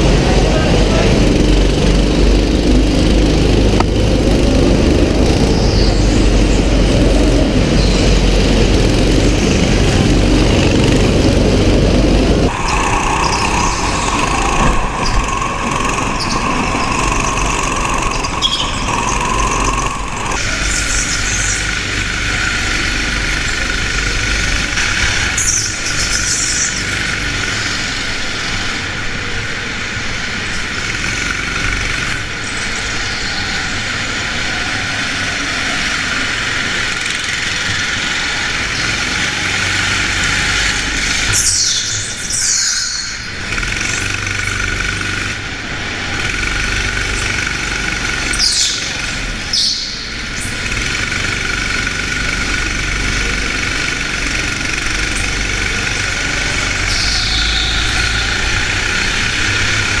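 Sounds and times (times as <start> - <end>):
tyres squealing: 0.0 - 28.8, 30.6 - 60.0
go-kart engine racing: 0.0 - 60.0.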